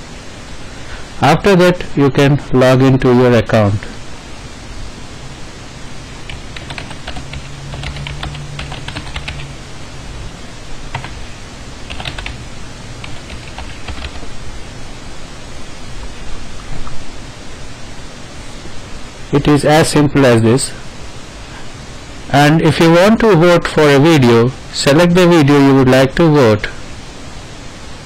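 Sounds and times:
steady background hiss: 0.0 - 28.0.

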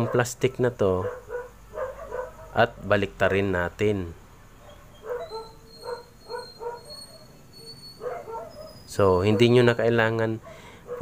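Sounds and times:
small dog yipping: 4.6 - 9.8.

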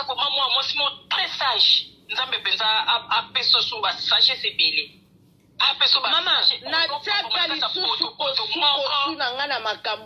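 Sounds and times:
person talking: 5.6 - 10.0.

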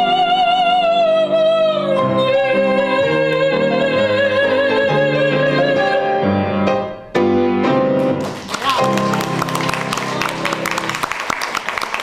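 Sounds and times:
grand piano chords: 0.0 - 11.4.

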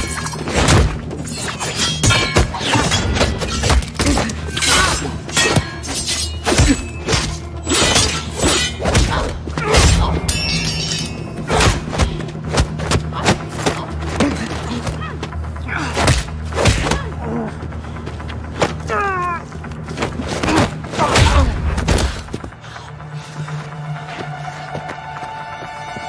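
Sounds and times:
dramatic music score: 0.0 - 26.0
glass shattering: 10.2 - 11.2.

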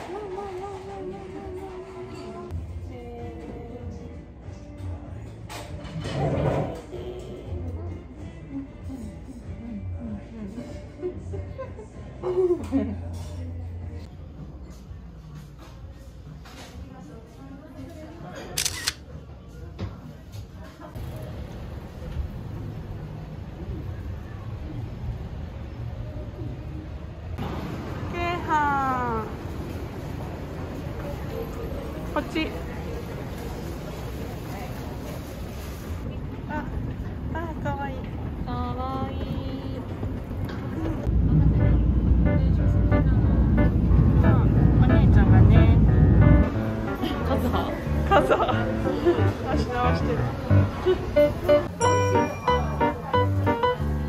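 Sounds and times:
low background music: 2.1 - 19.7, 41.1 - 54.0
camera shutter click: 18.6 - 19.0
train rumbling from inside: 26.9 - 51.4.

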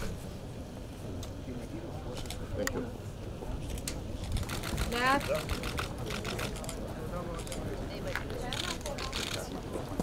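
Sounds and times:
group of people talking: 0.0 - 10.0.

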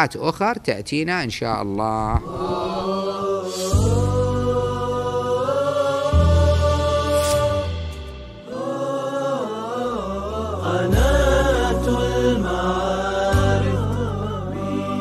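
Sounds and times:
melodic vocal chant: 1.6 - 15.0
low sustained bass notes: 3.8 - 8.6, 10.2 - 15.0.

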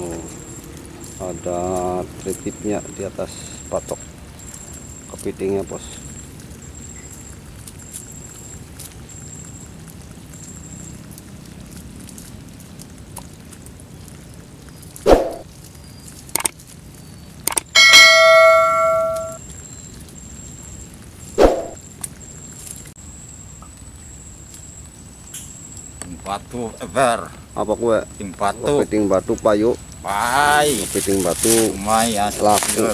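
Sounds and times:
bright bell-like ding: 17.8 - 19.4.

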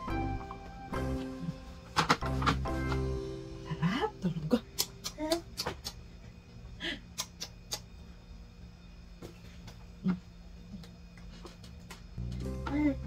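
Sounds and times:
soft background music: 0.0 - 5.4, 12.2 - 13.0.

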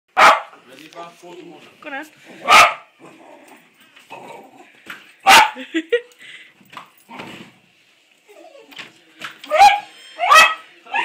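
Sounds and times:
small dog barking: 0.2 - 0.6, 2.4 - 2.9, 5.3 - 5.6, 9.5 - 10.6.

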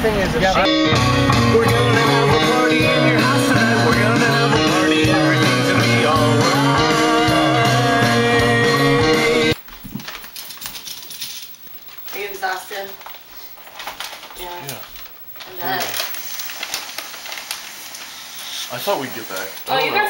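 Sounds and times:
rock music with guitar: 0.6 - 9.6
rustling: 9.6 - 20.0.

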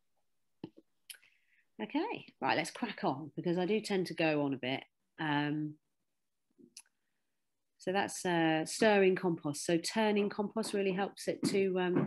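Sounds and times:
woman speaking: 1.8 - 5.8, 7.8 - 12.0.

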